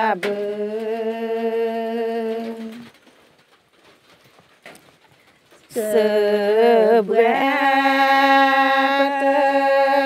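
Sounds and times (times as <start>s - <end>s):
person singing long notes: 0.0s - 2.9s, 5.7s - 10.0s.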